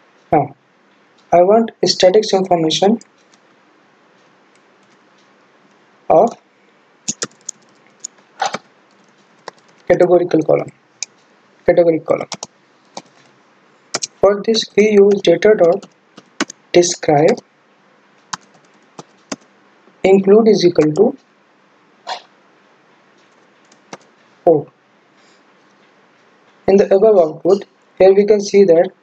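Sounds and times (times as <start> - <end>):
low steady hiss: 0.0 - 29.0
mouse and keyboard clicks: 7.1 - 10.0, 14.0 - 14.2, 15.1 - 16.6, 18.3 - 19.4, 23.2 - 24.1.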